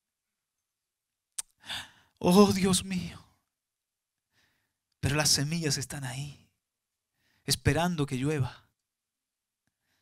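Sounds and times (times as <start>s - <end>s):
faint in-breath near microphone: 1.6s - 2.2s, 4.3s - 4.8s, 7.1s - 7.5s, 9.8s - 10.0s.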